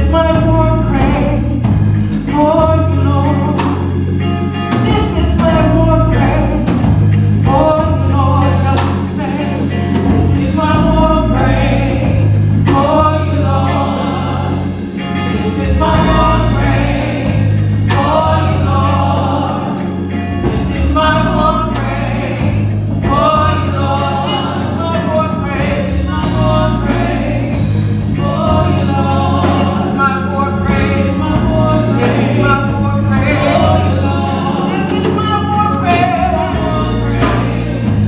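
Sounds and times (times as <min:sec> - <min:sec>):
deep bass line: 0:00.0 - 0:38.0
women singing gospel together: 0:04.7 - 0:38.0.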